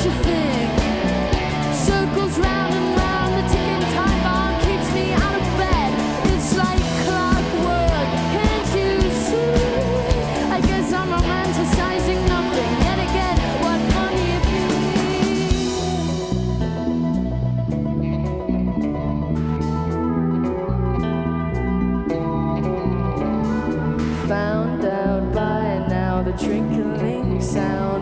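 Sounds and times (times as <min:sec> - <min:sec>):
woman singing: 0:00.0 - 0:16.3, 0:24.0 - 0:28.0
drum kit beat: 0:00.0 - 0:17.2
bass guitar: 0:00.0 - 0:28.0
electric guitar: 0:00.0 - 0:28.0.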